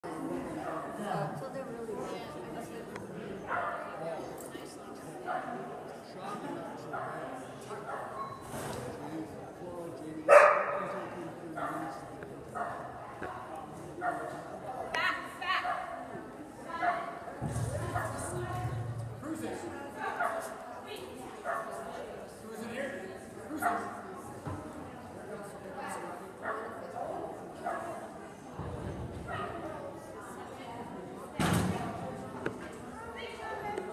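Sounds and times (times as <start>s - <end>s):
dog barking with echo: 10.3s - 10.8s.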